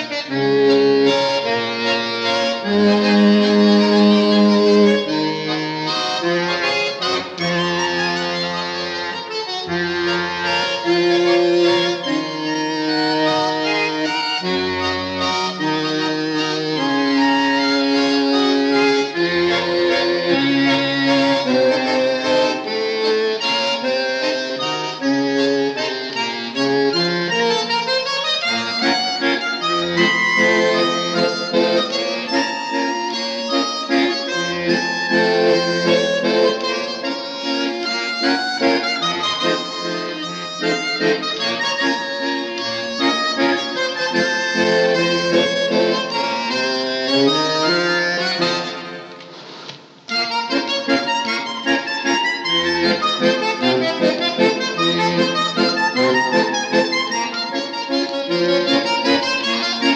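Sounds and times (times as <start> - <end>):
solo bandoneon waltz: 0.0 - 59.9.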